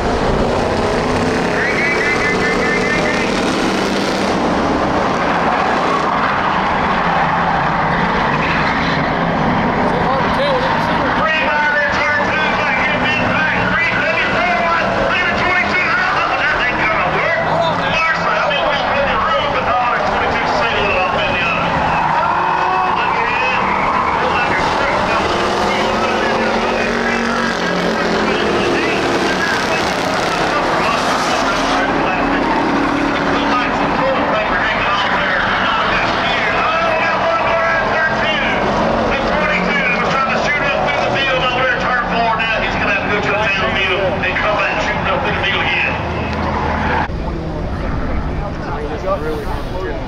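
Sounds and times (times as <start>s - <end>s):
race car engines roaring: 0.0s - 50.0s.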